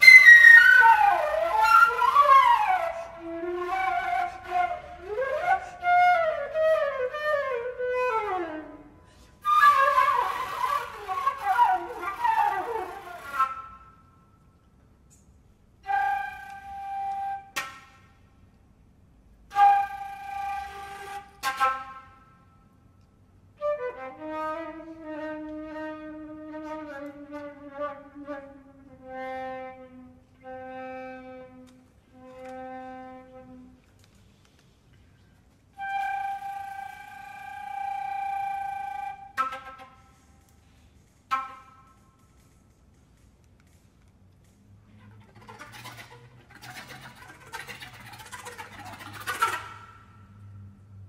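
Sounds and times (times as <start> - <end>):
breathy flute tones: 0.0 - 18.2, 19.5 - 22.9, 23.6 - 34.2, 35.0 - 42.8
flute percussive clicks: 14.6 - 18.6, 19.5 - 22.2, 25.3 - 25.8, 26.7 - 27.4, 31.5 - 32.8, 33.7 - 50.1.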